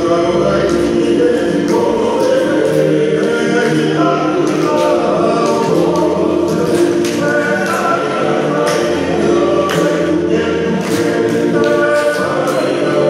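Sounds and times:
group singing in harmony: 0.0 - 13.0.

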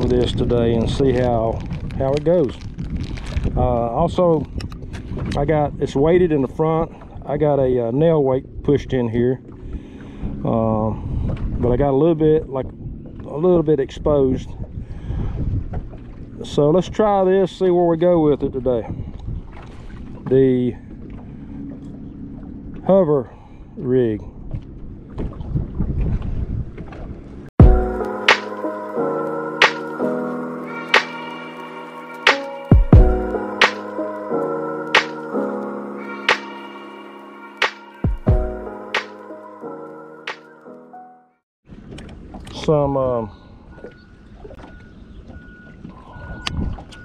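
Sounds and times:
wind rumbling on microphone: 0.0 - 22.9, 23.6 - 28.2, 41.7 - 47.0
water noise: 0.0 - 47.0
intro music with held chords: 27.6 - 41.4.

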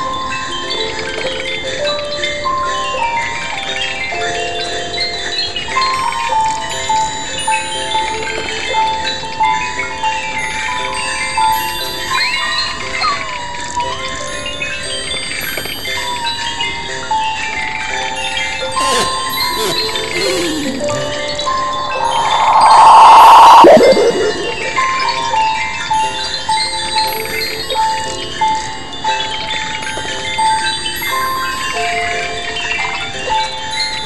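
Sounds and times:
chiming electronic christmas melodies: 0.0 - 22.9, 23.6 - 34.0.

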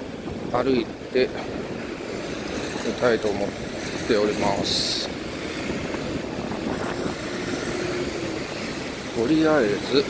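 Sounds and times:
passing street traffic: 0.0 - 10.0.

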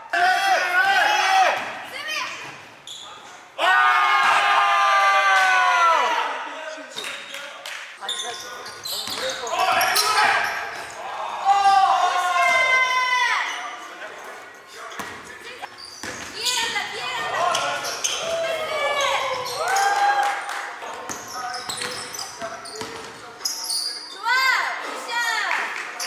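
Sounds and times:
sneakers squeaking on hardwood floor: 2.2 - 3.4, 8.0 - 10.9, 13.4 - 19.8, 21.0 - 24.6
basketball bouncing: 16.0 - 17.6.

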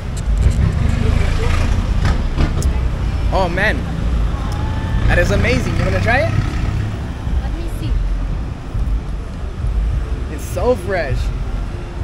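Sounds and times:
vehicle engines rumbling: 0.0 - 12.0.

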